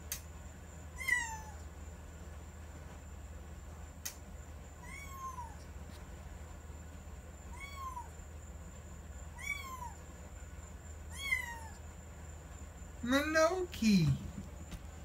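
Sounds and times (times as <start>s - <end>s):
kitten meowing: 4.8s - 5.6s, 7.5s - 8.1s, 9.4s - 10.0s, 11.1s - 11.8s.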